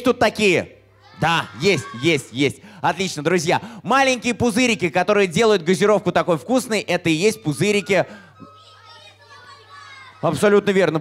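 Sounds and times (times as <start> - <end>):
children calling out together: 1.0 - 2.3, 7.3 - 10.4.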